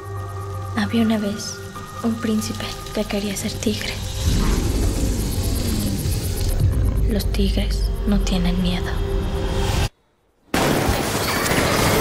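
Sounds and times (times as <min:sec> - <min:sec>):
dark music: 0:00.0 - 0:09.9
deep low rumble: 0:03.4 - 0:09.6.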